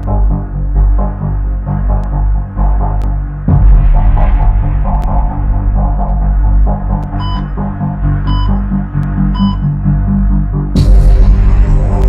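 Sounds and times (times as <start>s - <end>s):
low pulsing synth drone: 0.0s - 12.0s.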